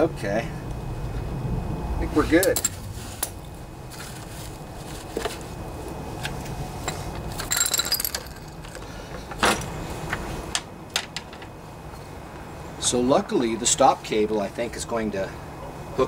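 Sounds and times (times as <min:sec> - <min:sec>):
metallic clinks and rattles: 0:06.8 - 0:08.9
metal jingle: 0:07.4 - 0:08.8.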